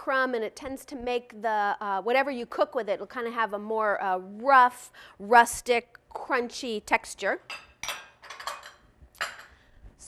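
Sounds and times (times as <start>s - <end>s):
kitchen utensils handling: 7.5s - 9.6s.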